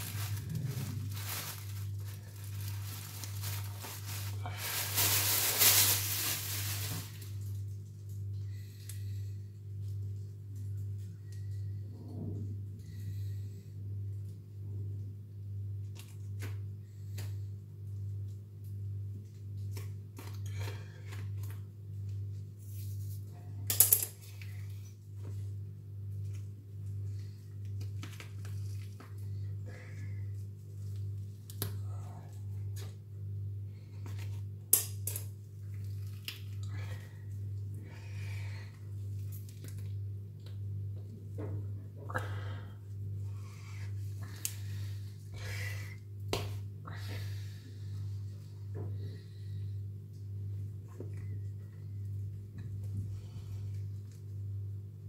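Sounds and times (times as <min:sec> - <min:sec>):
low hum: 0:00.0 - 0:23.6
steady low hum: 0:00.0 - 0:55.0.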